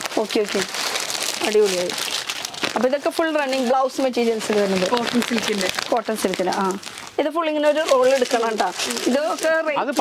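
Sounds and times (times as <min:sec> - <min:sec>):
plastic packaging crinkling: 0:00.0 - 0:10.0
people talking: 0:00.1 - 0:00.7, 0:01.4 - 0:02.0, 0:02.8 - 0:10.0.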